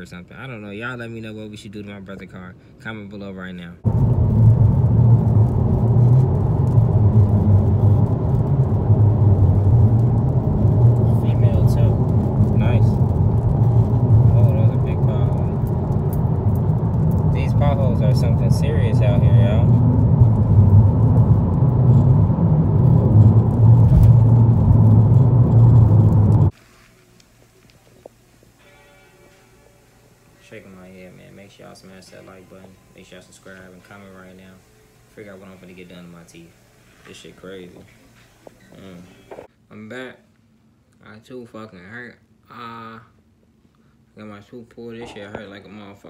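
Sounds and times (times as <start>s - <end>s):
car interior road and wind noise: 3.8s - 26.6s.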